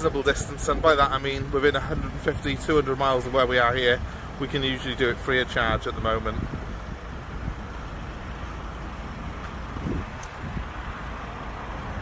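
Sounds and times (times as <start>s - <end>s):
outdoor background rumble: 0.0s - 12.0s.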